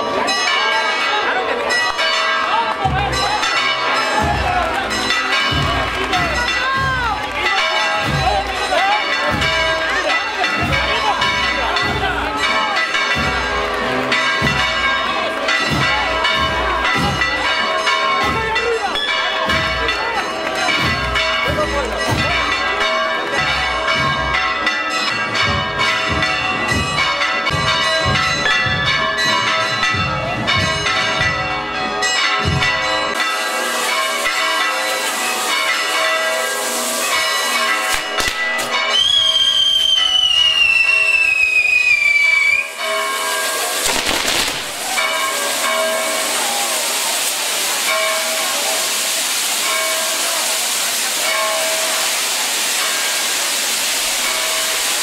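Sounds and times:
bells ringing: 0.0s - 55.0s
hiss of firework fountains: 33.1s - 55.0s
firework pops: 37.9s - 39.1s, 43.8s - 45.0s
firework whistle falling in pitch: 38.9s - 42.8s.

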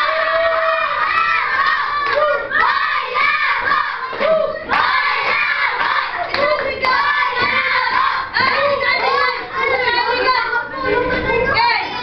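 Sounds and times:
children shouting and cheering: 0.0s - 12.0s.

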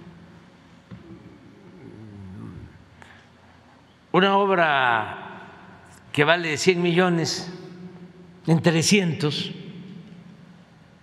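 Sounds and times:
faint wavering voice-like hum: 0.0s - 3.8s.

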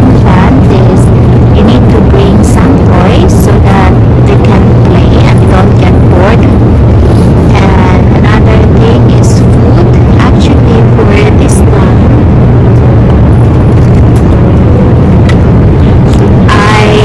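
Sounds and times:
airliner cabin drone: 0.0s - 17.0s.

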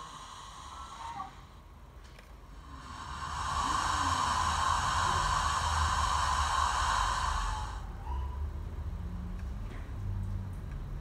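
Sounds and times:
steam hiss from model locomotive: 0.0s - 1.7s, 2.6s - 7.9s.

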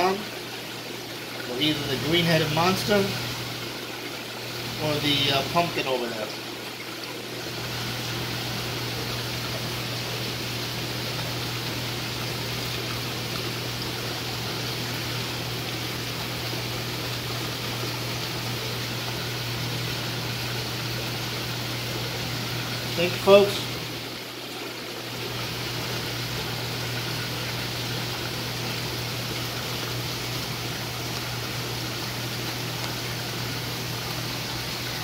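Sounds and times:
rush of running water: 0.0s - 35.0s.

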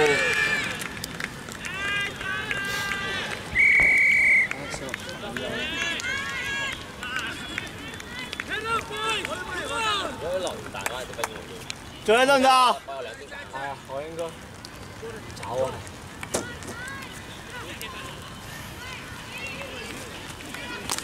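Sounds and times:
players shouting: 0.0s - 13.8s, 15.4s - 21.0s
referee's whistle blast: 3.5s - 4.5s.

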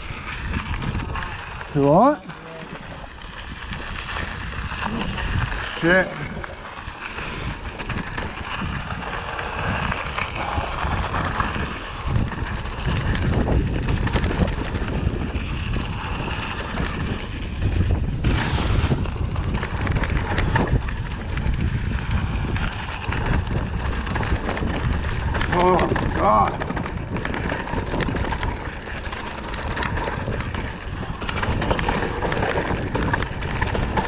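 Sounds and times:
bike rattling and knocking: 0.0s - 34.0s
tyres crunching on gravel: 0.0s - 34.0s
wind rumble on microphone: 0.0s - 34.0s.

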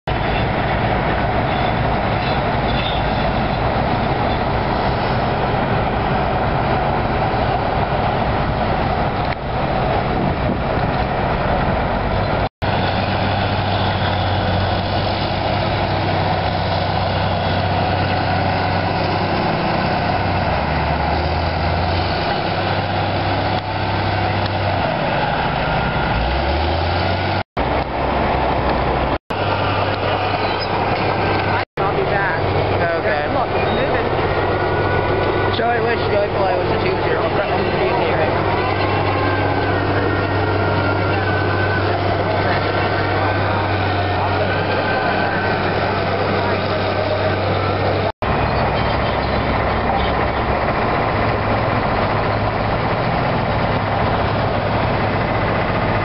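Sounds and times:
heavy diesel engines revving: 0.1s - 56.0s.

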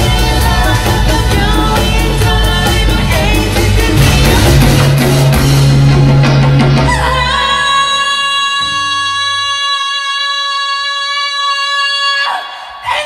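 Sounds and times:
live band playing: 0.0s - 8.0s.

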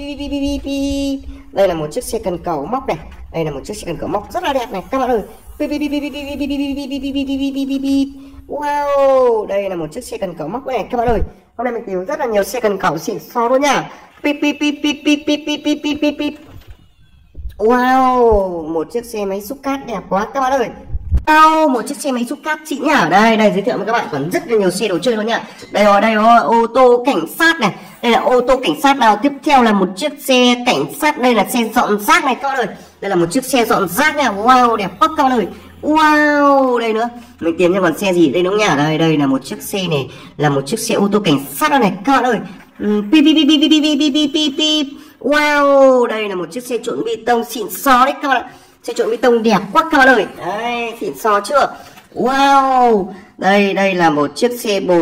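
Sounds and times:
toy electronic siren warbling: 0.0s - 11.2s, 14.6s - 18.4s, 33.5s - 38.7s.

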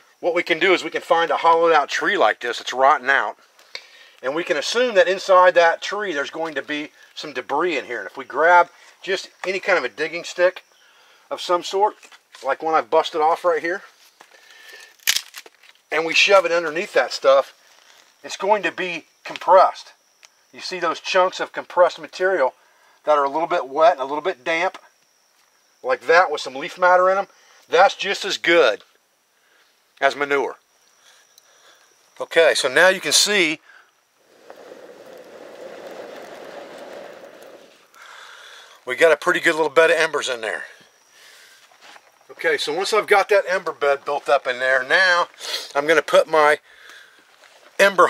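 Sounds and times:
light scraping: 34.2s - 38.0s
person blowing air into bucket: 34.2s - 38.2s.

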